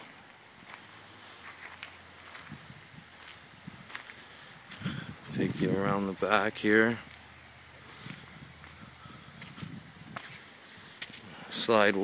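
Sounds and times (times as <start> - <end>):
faint footsteps with soft scuffs: 0.6 - 12.0.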